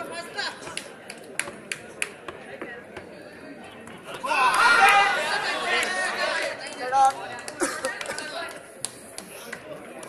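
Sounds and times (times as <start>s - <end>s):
crowd chatter: 0.0s - 10.0s
people shouting: 4.2s - 6.6s.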